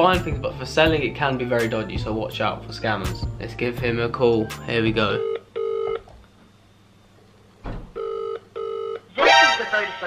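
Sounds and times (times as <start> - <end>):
phone ringback tone: 5.1 - 6.0, 8.0 - 9.1.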